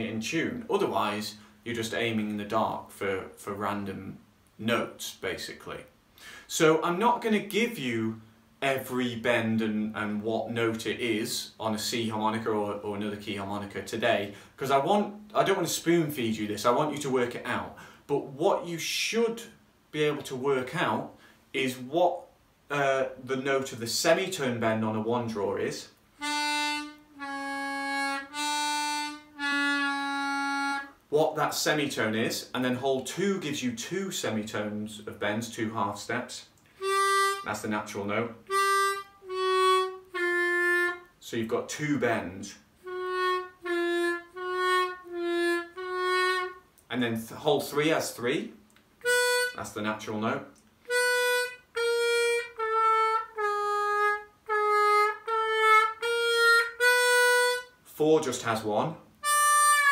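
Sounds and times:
harmonica bent notes: 0:26.2 - 0:31.0, 0:36.8 - 0:37.6, 0:38.4 - 0:41.1, 0:42.8 - 0:46.7, 0:49.0 - 0:49.6, 0:50.8 - 0:57.8, 0:59.2 - 0:59.9.

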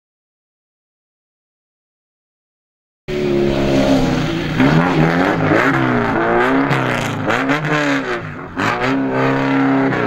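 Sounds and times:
rally car engine running: 0:03.1 - 0:10.0.

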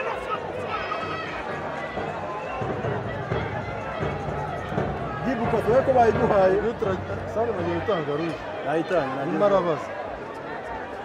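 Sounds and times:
stadium background noise: 0:00.0 - 0:11.0
voices calling and talking: 0:00.0 - 0:11.0.

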